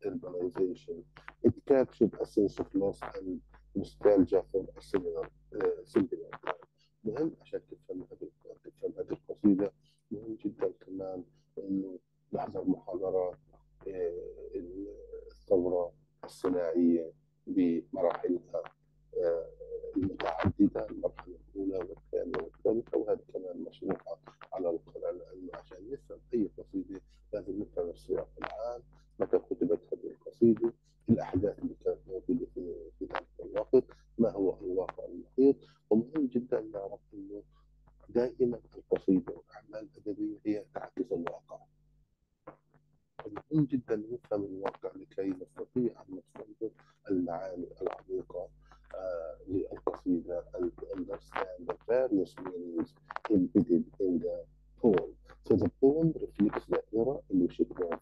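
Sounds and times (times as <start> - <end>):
lecturer talking: 0.0 - 37.4, 38.1 - 41.6, 43.2 - 58.0
person speaking: 0.0 - 37.4, 38.1 - 41.6, 43.2 - 58.0
steady low hum: 0.0 - 37.4, 38.1 - 41.6, 43.2 - 58.0.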